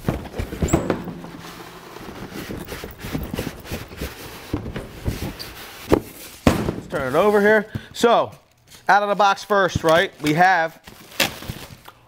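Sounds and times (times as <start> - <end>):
styrofoam packing scraping: 0.0 - 7.8, 8.5 - 12.0.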